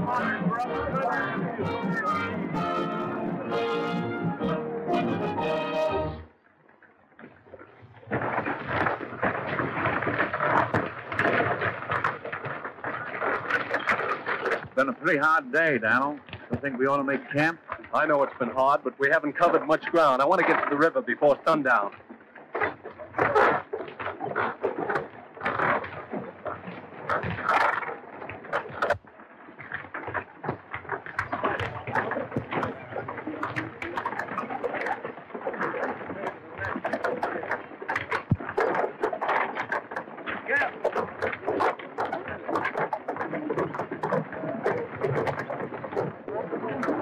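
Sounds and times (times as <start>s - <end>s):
indistinct voices: 0.0s - 3.7s
wagon clatter of knocks and clicks: 7.2s - 47.0s.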